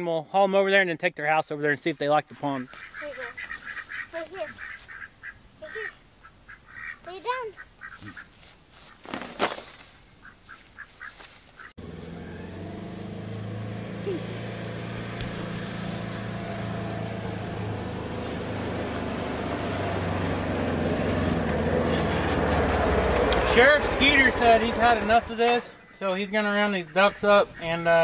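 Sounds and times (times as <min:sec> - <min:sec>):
utility vehicle driving: 0:11.8 - 0:26.0.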